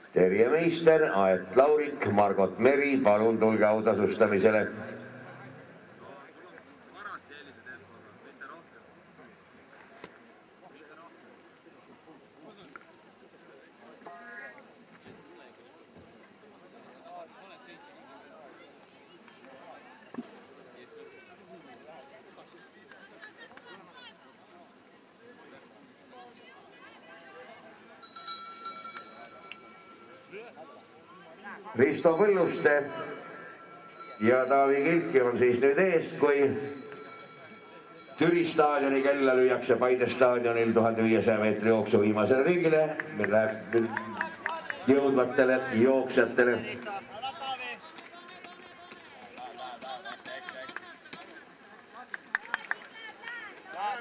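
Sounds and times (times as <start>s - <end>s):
metal bell ringing: 28.0s - 30.3s, 31.8s - 39.2s
sharp claps: 42.9s - 45.2s, 47.9s - 53.6s.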